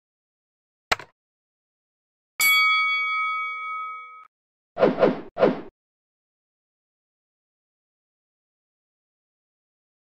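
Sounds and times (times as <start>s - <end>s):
bell ding chime: 2.4s - 4.3s.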